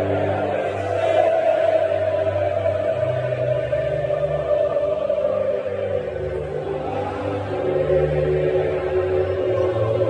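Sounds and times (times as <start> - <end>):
anthem over loudspeakers: 0.0 - 10.0
crowd singing: 0.0 - 10.0.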